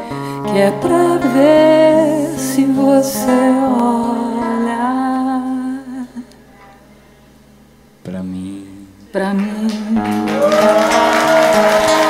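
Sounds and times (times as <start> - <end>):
faint background noise: 0.0 - 11.8.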